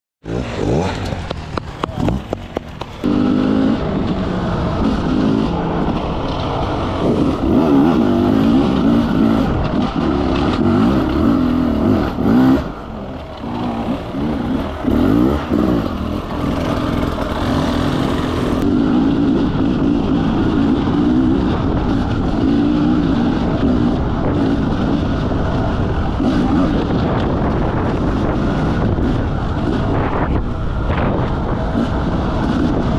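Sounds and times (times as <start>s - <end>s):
motorcycle engine revving: 0.2s - 32.9s.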